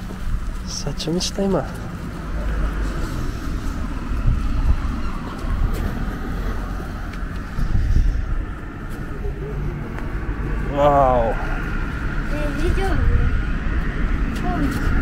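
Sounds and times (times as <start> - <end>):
road traffic rumble: 0.0 - 15.0.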